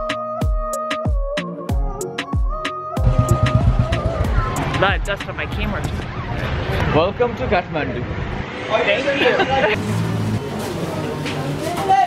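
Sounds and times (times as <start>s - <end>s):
low rumble of traffic: 3.1s - 12.0s.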